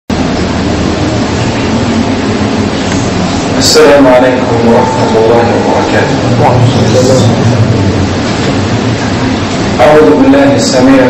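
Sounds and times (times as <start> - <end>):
noisy hiss and rumble: 0.1 - 11.0.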